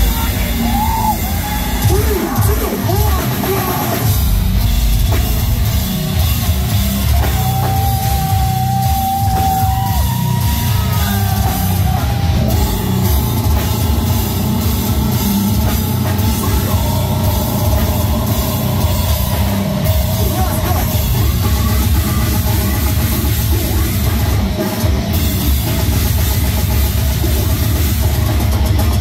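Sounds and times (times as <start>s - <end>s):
death metal band playing live: 0.0s - 29.0s
distorted guitars: 0.0s - 29.0s
fast dense drums: 0.0s - 29.0s.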